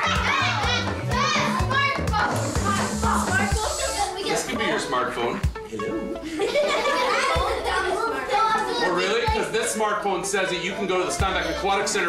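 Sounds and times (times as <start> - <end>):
music with bass beat: 0.0 - 4.2
children calling out: 0.0 - 4.8, 6.6 - 9.5.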